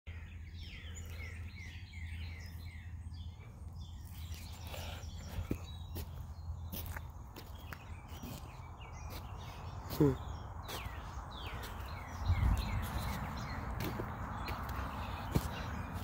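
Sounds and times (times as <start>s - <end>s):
footsteps on dirt: 4.0s - 16.0s.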